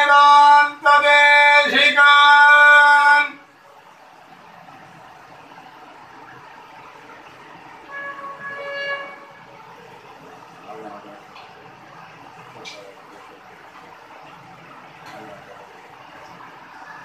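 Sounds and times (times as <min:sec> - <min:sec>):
faint background murmur: 0:03.4 - 0:17.0
loud held tone: 0:07.8 - 0:09.5
horn-like tone: 0:07.8 - 0:09.7.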